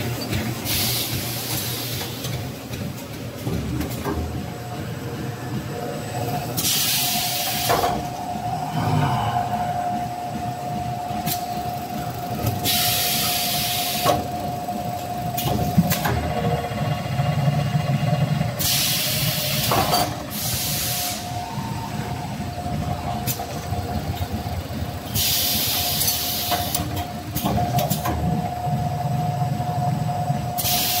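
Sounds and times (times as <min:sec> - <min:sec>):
machine whine and rumble: 0:00.0 - 0:31.0
compressed air hiss: 0:18.6 - 0:21.3.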